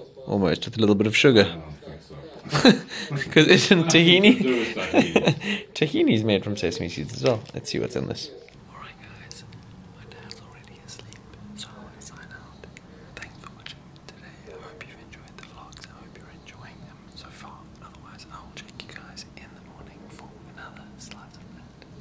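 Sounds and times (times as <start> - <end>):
man whispering: 8.3 - 22.0.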